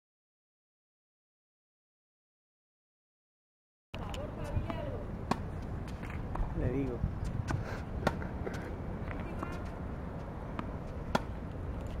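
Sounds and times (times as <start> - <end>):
steady low rumble: 4.0 - 12.0
tennis ball pops on hard court: 10.6 - 11.4.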